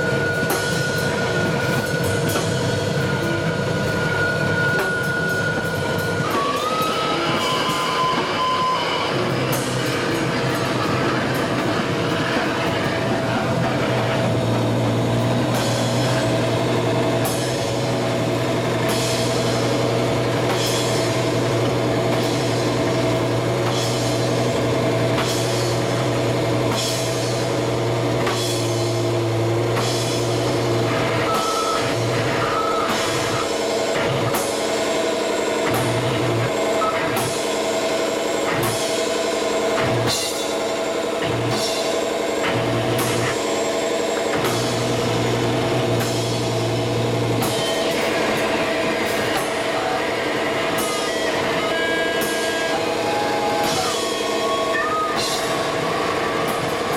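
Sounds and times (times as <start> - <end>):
drum and cymbal strikes: 0.0 - 56.9
loud electronic drone: 0.0 - 56.9.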